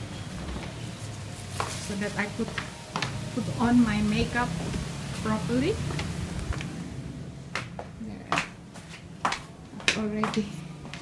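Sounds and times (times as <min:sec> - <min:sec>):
soft footsteps on hard floor: 0:01.4 - 0:03.2, 0:05.8 - 0:06.8, 0:07.4 - 0:11.0.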